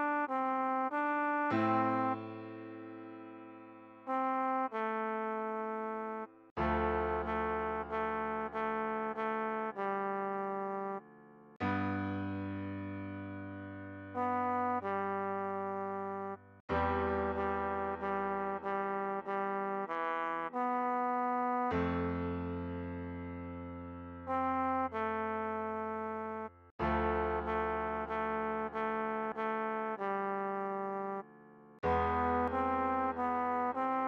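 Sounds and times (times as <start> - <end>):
trombone melody: 0.0 - 2.8, 4.0 - 11.0, 14.1 - 22.4, 24.2 - 34.0
piano chords: 0.9 - 20.0, 21.7 - 34.0.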